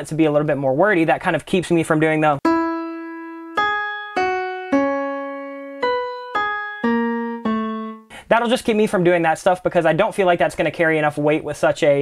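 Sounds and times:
slow piano melody: 2.4 - 8.1.

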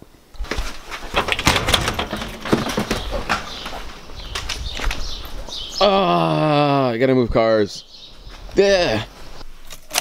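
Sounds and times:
footsteps on concrete: 2.2 - 5.7.

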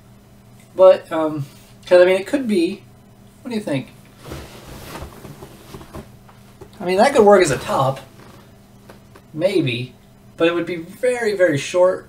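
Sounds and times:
cloth rustling: 4.1 - 9.3.

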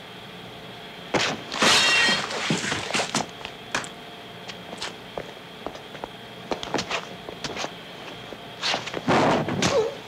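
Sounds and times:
faint steady hiss and whine: 0.0 - 10.0
footsteps and scuffling: 1.2 - 9.9.

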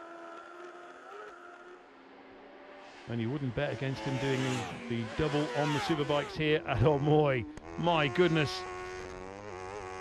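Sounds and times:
motorcycle engine at high revs: 3.8 - 10.0.

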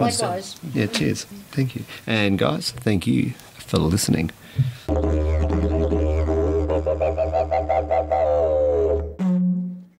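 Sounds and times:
didgeridoo drone: 4.9 - 9.9.

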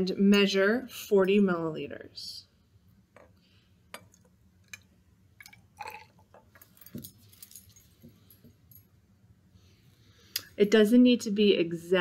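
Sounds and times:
glass bottle clinking: 3.9 - 4.8, 5.4 - 7.8.

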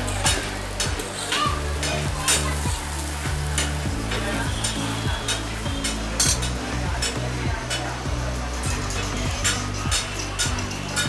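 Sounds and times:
frying hiss: 0.0 - 11.0
metal spatula scraping griddle: 3.5 - 8.0, 8.6 - 11.0.

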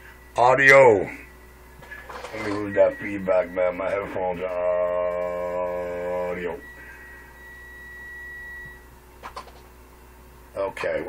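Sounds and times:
audio feedback whistle: 2.3 - 8.9.

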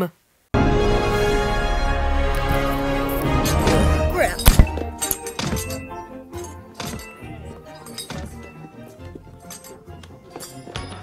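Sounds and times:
animated film soundtrack music: 0.0 - 11.0
heavy thuds: 3.3 - 6.0.

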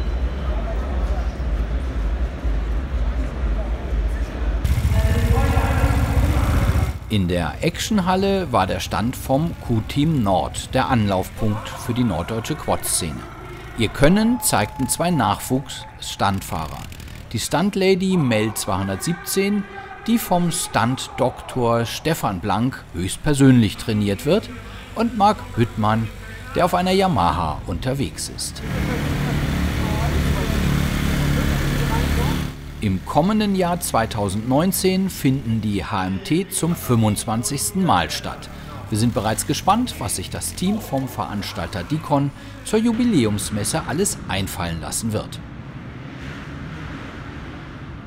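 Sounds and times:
faint voices: 0.0 - 44.5
quad engine idling: 4.6 - 18.5, 21.4 - 35.5, 38.0 - 43.8.

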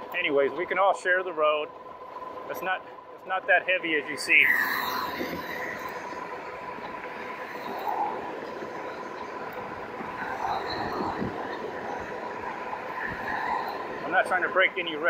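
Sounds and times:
thin steady whine: 0.0 - 15.0
tyres rolling on pavement: 0.0 - 15.0
wind and road noise: 0.0 - 15.0
car passing: 4.2 - 15.0.

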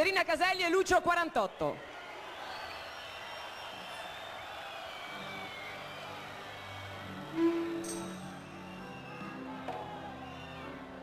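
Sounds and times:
live band soft instrumental: 6.9 - 11.0.

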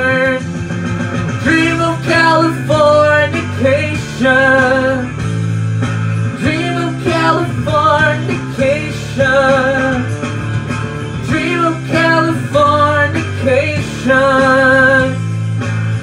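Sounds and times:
man singing into microphone: 0.0 - 0.5, 1.4 - 5.2, 6.4 - 10.2, 11.2 - 15.2
rock backing track with guitar: 0.0 - 16.0.

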